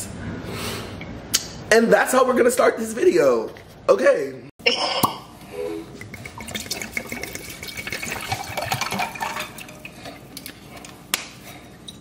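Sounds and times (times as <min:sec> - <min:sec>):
water pouring and splashing: 0:06.0 - 0:10.7.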